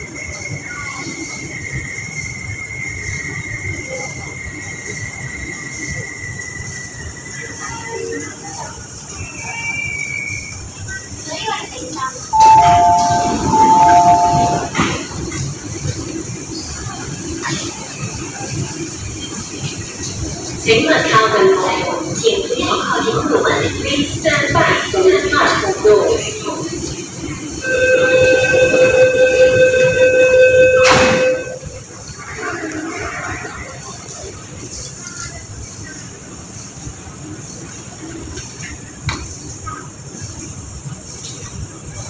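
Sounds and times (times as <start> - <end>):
two-note door chime: 12.4 - 14.8
door closing warning tone: 12.4 - 15.0, 27.7 - 31.7.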